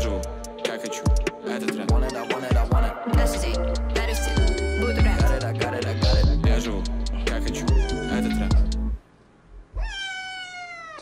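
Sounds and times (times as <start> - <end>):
pop music with heavy bass: 0.0 - 9.0
cat meowing: 2.0 - 2.6, 4.2 - 5.3, 7.6 - 8.7, 9.8 - 11.0.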